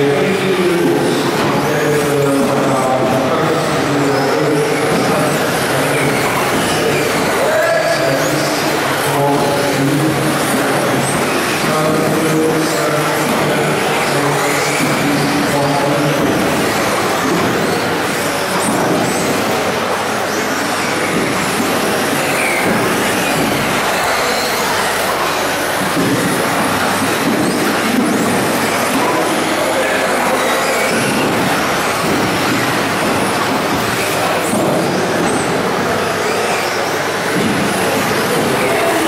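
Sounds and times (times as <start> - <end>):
loud hall din: 0.0 - 39.0.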